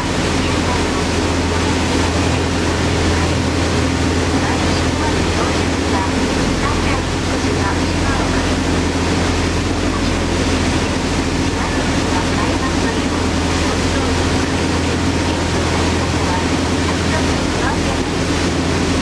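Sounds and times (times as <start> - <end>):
boat engines droning: 0.0 - 19.0
water wake hissing: 0.0 - 19.0
wind: 0.0 - 19.0.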